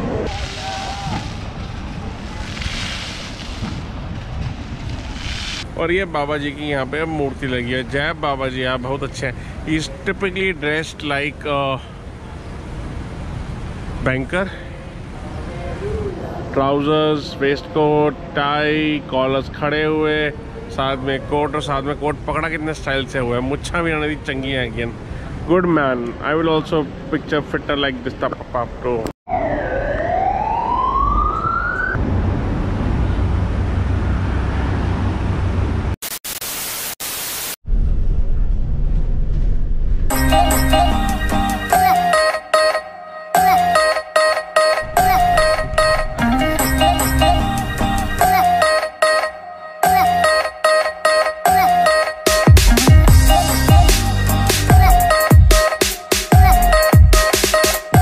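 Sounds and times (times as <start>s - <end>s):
bus engine rumble: 32.0s - 36.0s, 44.8s - 48.3s.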